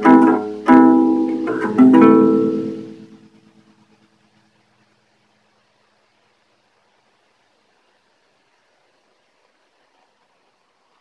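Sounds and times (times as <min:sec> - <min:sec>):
acoustic guitar chord ringing: 0:00.0 - 0:04.5.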